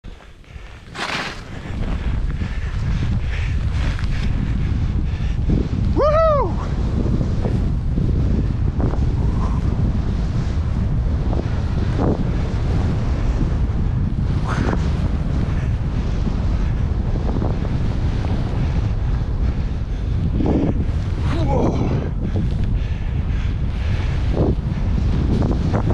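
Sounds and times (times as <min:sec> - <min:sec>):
wind buffeting microphone: 0:00.0 - 0:25.9
skis hissing through snow: 0:00.1 - 0:02.0
person whooping: 0:05.9 - 0:06.7, 0:21.3 - 0:22.0.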